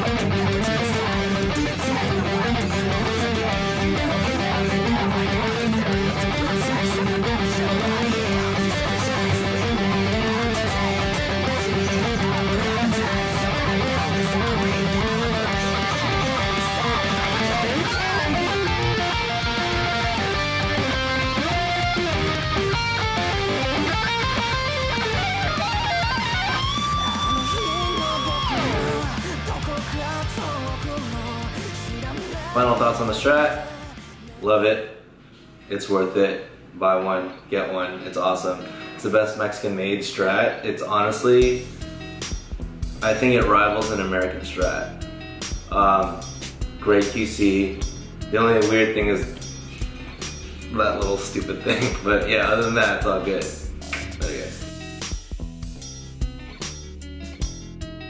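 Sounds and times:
electric guitar through amplifier: 0.0s - 34.3s.

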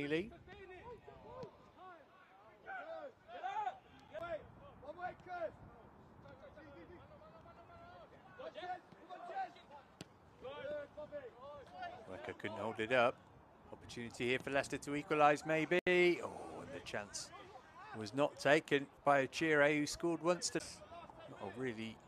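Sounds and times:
players shouting calls: 0.5s - 5.6s, 7.1s - 13.1s.

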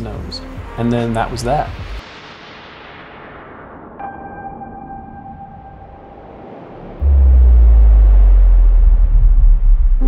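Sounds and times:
deep bass rumble: 6.8s - 10.0s.

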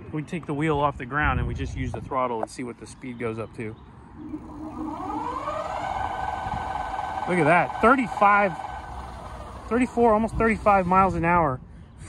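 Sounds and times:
electric motor whining: 4.2s - 11.2s.

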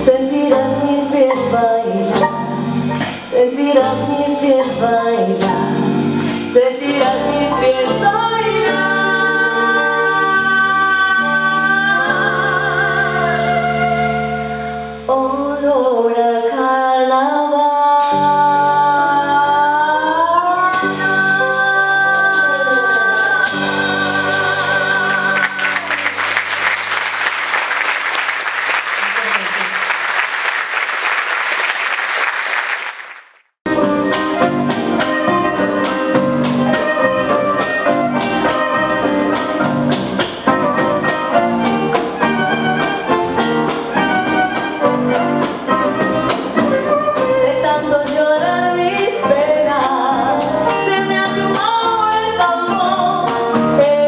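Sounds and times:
woman singing folk song: 0.0s - 2.3s, 2.9s - 5.9s, 6.5s - 14.2s, 15.1s - 24.3s, 47.2s - 54.0s
audience applause: 25.1s - 33.5s
folk band with guitars and violin: 33.7s - 49.3s.

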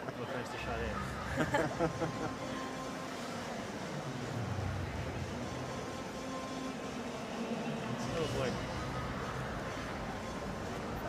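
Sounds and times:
skating arena background hum: 0.0s - 11.0s.

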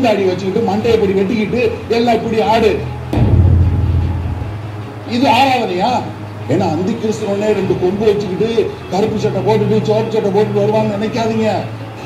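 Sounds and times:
deep boom impact: 3.1s - 5.1s.

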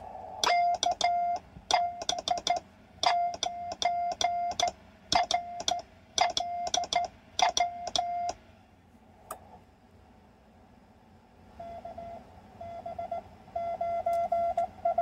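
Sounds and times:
morse code tone: 0.4s - 8.4s.

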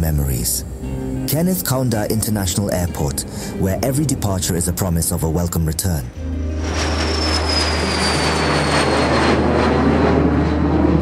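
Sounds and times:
jet engines whining: 0.0s - 11.0s.

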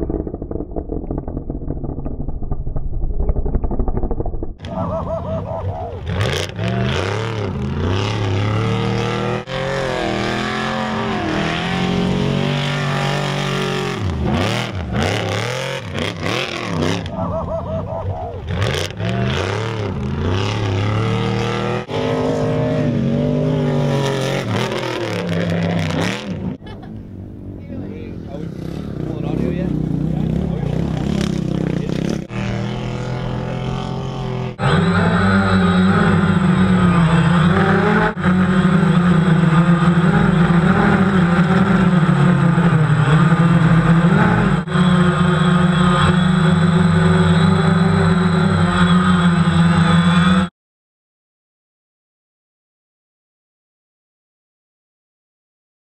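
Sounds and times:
truck engines revving: 4.5s - 50.5s.

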